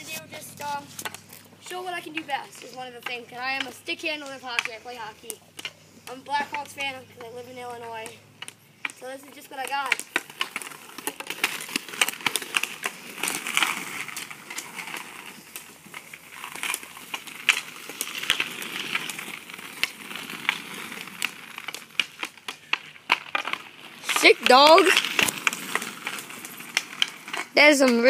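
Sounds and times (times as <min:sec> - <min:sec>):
ball scraping on asphalt: 0:00.0 - 0:28.0
hockey stick tapping a ball: 0:02.0 - 0:07.4.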